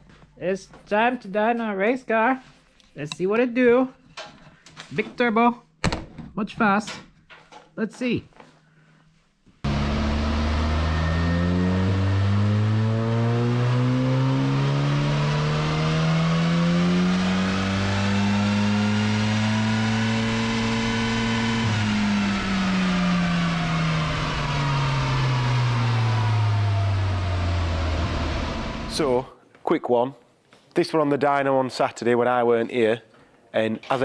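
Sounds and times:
turbocharged engine revving: 0:09.7 - 0:29.3.

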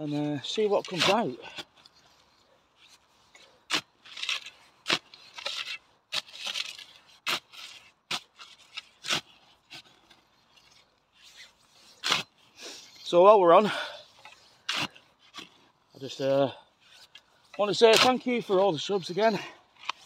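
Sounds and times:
spade blade scraping dirt: 0:00.0 - 0:20.0
spade chopping into soil: 0:17.9 - 0:18.2.

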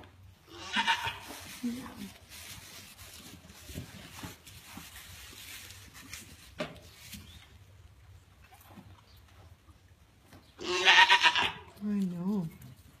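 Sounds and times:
goat bleating: 0:00.5 - 0:01.3, 0:10.6 - 0:11.7.

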